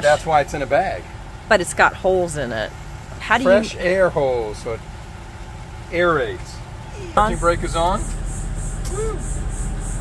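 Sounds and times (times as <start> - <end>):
engine idling: 0.0 - 10.0
pulsing high buzz: 7.0 - 10.0.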